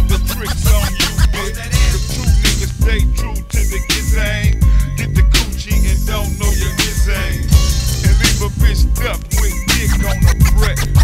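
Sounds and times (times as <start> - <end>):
heavy bass: 0.0 - 11.0
rapping over a beat: 0.0 - 11.0.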